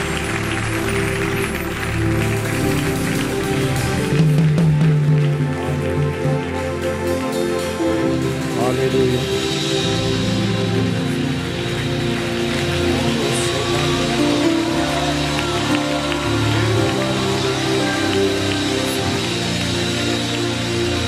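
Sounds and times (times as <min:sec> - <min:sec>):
slow worship music chords: 0:00.0 - 0:21.0.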